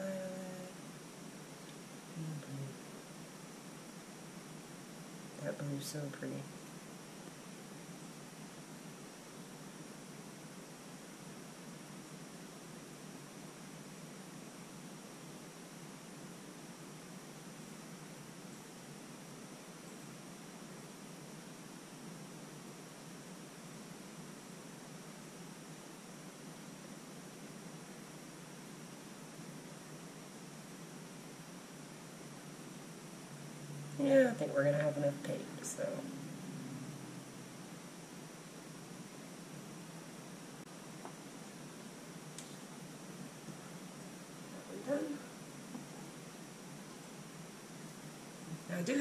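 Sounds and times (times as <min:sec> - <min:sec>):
microphone hiss with high whine: 0:00.0 - 0:49.0.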